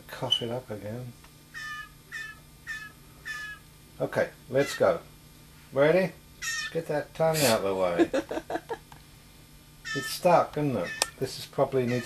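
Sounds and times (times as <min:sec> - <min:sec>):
young bird begging calls: 0:01.5 - 0:03.7, 0:04.6 - 0:04.9, 0:06.4 - 0:06.8, 0:09.8 - 0:11.2, 0:11.8 - 0:12.0.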